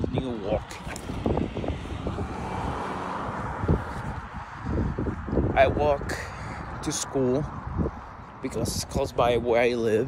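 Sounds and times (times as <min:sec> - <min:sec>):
wind rumbling on microphone: 0:00.0 - 0:10.0
car driving past: 0:01.0 - 0:04.4.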